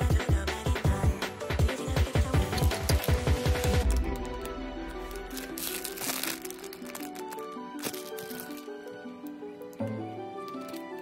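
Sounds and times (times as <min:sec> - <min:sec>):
thumping music beat: 0:00.0 - 0:05.3.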